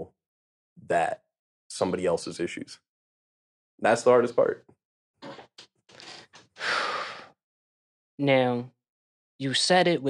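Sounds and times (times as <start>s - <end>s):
person breathing into microphone: 5.9s - 7.4s.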